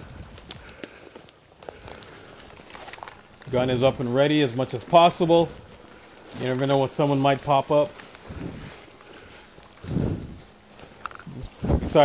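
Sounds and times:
footsteps through leafy undergrowth: 0:00.0 - 0:12.0
twigs clicking and snapping: 0:00.0 - 0:12.0.

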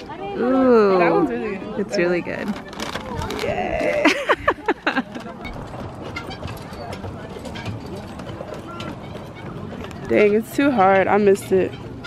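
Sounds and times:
distant people talking: 0:00.0 - 0:12.0.

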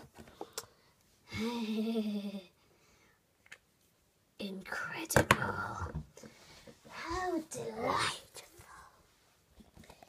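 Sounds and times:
child's wordless vocal sound: 0:06.9 - 0:09.0.

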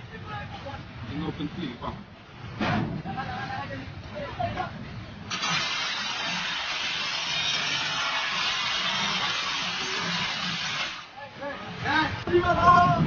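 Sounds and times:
angle grinder cutting steel: 0:05.3 - 0:11.1.

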